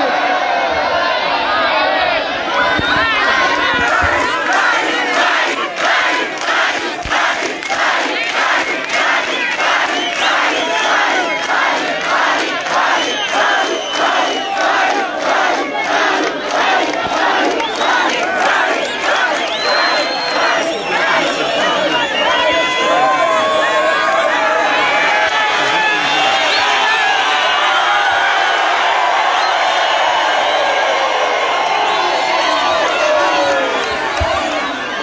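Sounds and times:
crowd cheering and chanting: 0.0 - 35.0.

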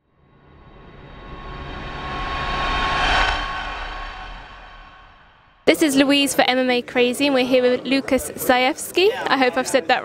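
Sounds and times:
rushing whoosh with low rumble: 0.0 - 5.7.

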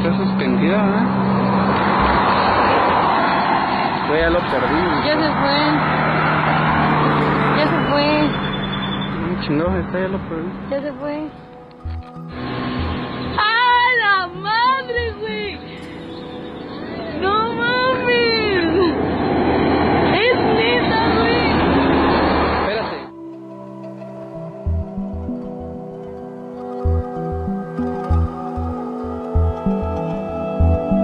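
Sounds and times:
low hum: 1.0 - 13.4, 15.8 - 31.0.

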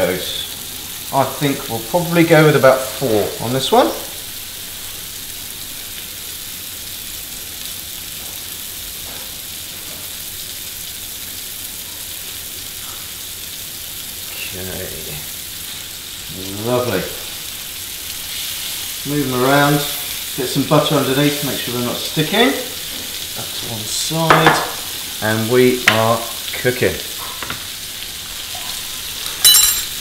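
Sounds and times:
burger patties sizzling in a pan: 0.0 - 30.0.

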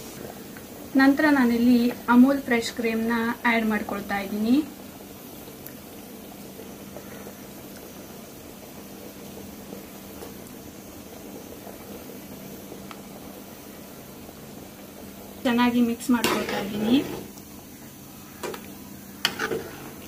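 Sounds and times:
curry bubbling in pot: 3.7 - 20.0.

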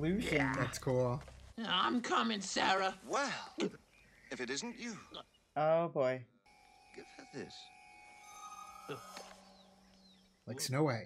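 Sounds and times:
held soundtrack tones: 4.3 - 10.8.

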